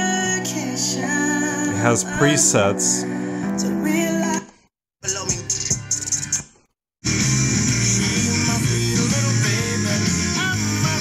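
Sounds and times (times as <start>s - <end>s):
radio station music: 1.0s - 4.4s.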